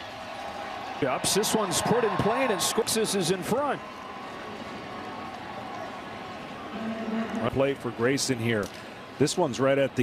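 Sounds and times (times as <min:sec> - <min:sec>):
crowd murmur: 0:04.4 - 0:08.0.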